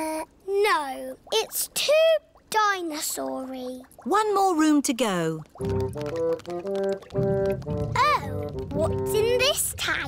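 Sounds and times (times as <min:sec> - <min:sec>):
background music melody: 0:05.6 - 0:10.0.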